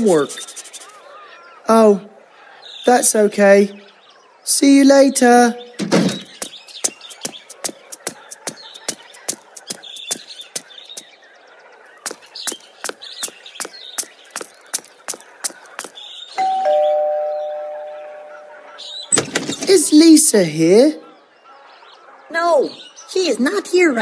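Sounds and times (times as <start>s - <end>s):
cartoon footsteps: 5.8s - 11.2s, 12.0s - 16.0s, 19.1s - 20.0s
two-note doorbell ding-dong: 16.4s - 18.5s.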